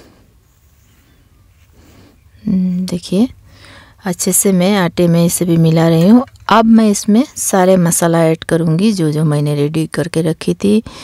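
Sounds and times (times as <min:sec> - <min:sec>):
low steady background hum: 0:00.0 - 0:11.0.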